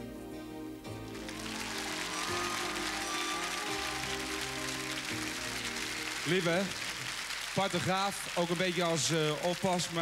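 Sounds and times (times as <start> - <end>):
slow tender song: 0.0 - 6.3
audience applause: 1.1 - 10.0.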